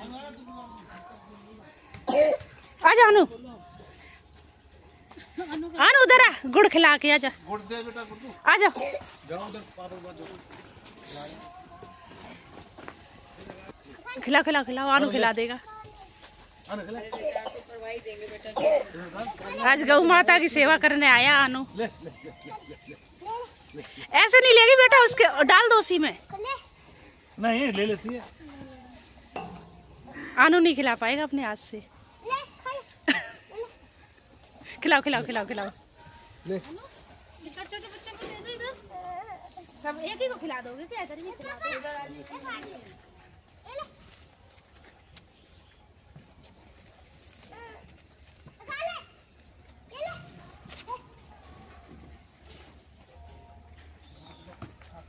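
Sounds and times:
cough-like vocal sound: 2.0 - 2.5, 8.7 - 9.1, 17.1 - 17.7, 18.6 - 19.0.

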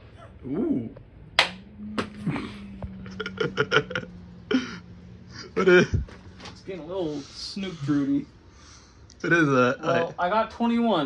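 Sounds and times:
steady low hum: 0.0 - 11.0
dart hitting electronic dartboard: 1.4 - 2.3.

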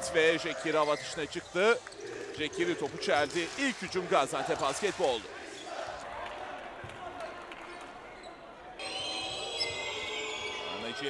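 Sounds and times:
faint arena crowd noise: 0.0 - 11.0.

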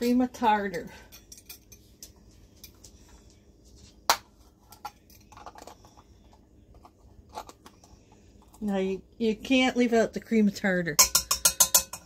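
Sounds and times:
kitchen utensils clinking: 0.0 - 2.9, 11.0 - 12.0.

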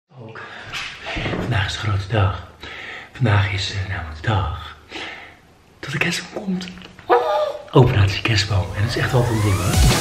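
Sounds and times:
man talking: 1.2 - 2.6, 5.8 - 6.9, 7.7 - 9.8.

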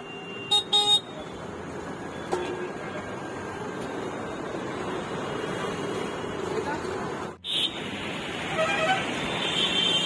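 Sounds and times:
street noise: 0.0 - 10.0.

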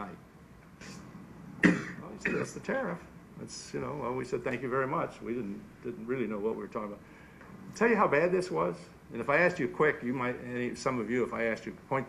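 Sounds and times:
man coughing: 1.6 - 2.6
intake of breath: 7.0 - 7.6.

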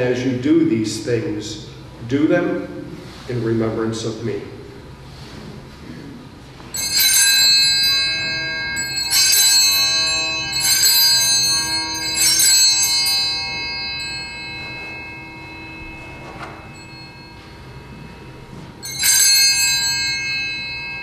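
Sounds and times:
altar bells ringing: 6.6 - 21.0.

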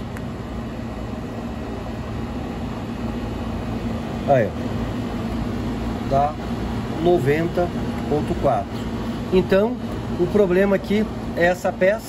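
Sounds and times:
air conditioning machinery hum: 0.0 - 12.0.

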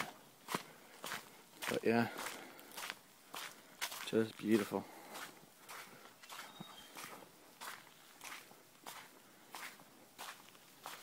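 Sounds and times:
footsteps crunching on sand: 0.0 - 11.0.

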